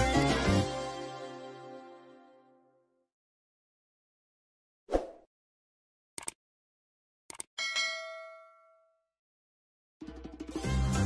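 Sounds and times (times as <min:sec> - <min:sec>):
metallic bell ding: 0:07.6 - 0:09.0.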